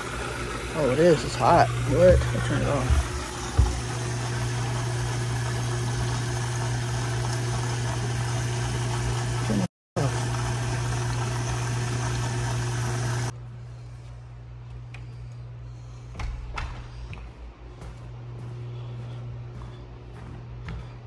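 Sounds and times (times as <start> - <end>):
water churning through jets: 0.0 - 13.3
pump motor hum: 0.0 - 14.0.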